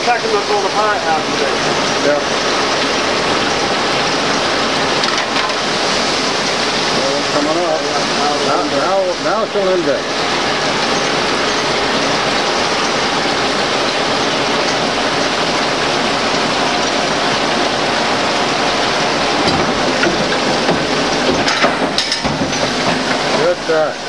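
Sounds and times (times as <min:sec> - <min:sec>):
lathe clatter and hiss: 0:00.0 - 0:03.4, 0:04.2 - 0:24.0.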